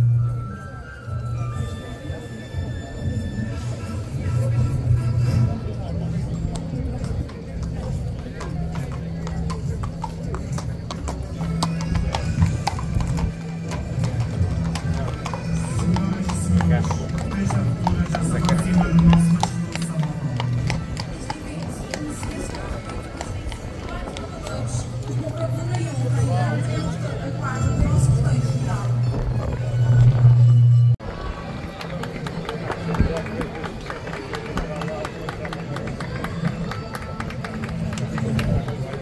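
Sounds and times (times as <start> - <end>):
crowd voices: 0.0 - 39.0
horse hooves clip-clopping on pavement: 4.0 - 30.3, 31.7 - 39.0
music with low bass: 26.3 - 31.0.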